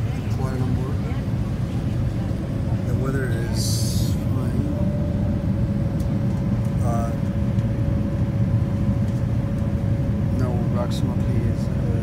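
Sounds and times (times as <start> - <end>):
jet cabin engine rumble: 0.0 - 12.0.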